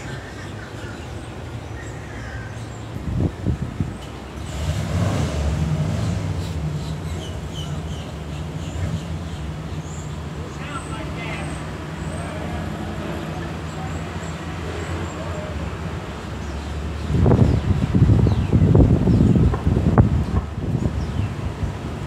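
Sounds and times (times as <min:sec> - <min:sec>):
low rumble of city traffic: 0:00.0 - 0:22.0
wind buffeting microphone: 0:02.6 - 0:10.0, 0:15.8 - 0:22.0
faint voices: 0:10.2 - 0:16.4.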